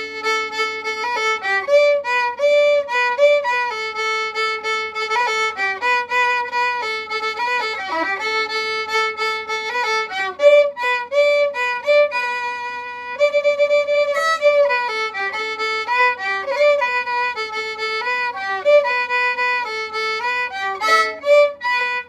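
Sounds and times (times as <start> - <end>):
violin playing pop melody: 0.0 - 22.0.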